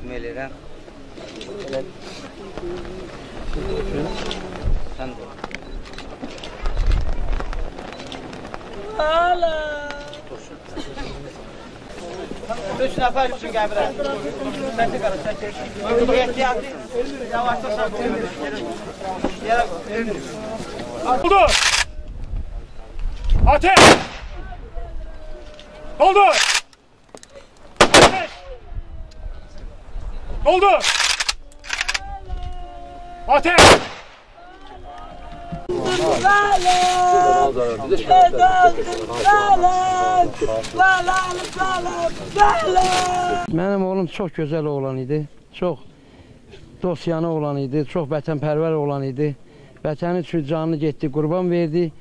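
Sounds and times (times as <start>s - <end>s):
faint indistinct voices: 0.0s - 43.6s
rifle shots with echo: 23.7s - 24.4s, 27.8s - 28.5s, 33.6s - 34.3s.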